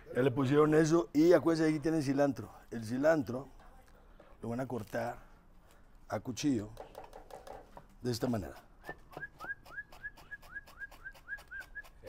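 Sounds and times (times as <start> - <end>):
knife chopping on cutting board: 8.3 - 11.9.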